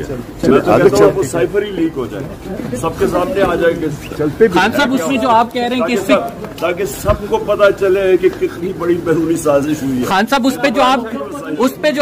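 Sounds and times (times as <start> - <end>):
men talking in a crowd: 0.0 - 12.0.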